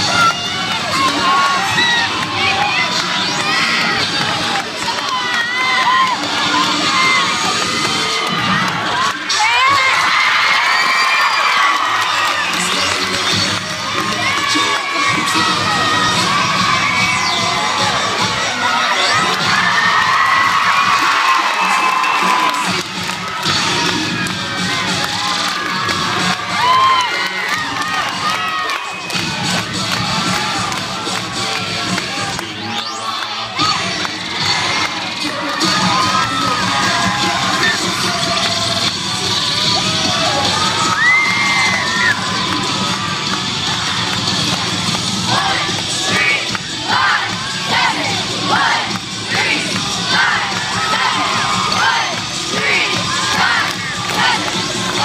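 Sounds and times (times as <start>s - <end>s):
crowd cheering and screaming: 0.0s - 55.0s.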